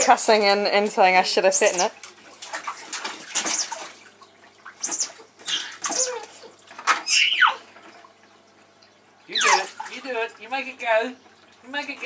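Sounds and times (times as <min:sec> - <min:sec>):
baby slapping water in pool: 0:00.0 - 0:08.2, 0:09.3 - 0:12.0
baby squealing: 0:04.8 - 0:07.7, 0:09.3 - 0:09.7.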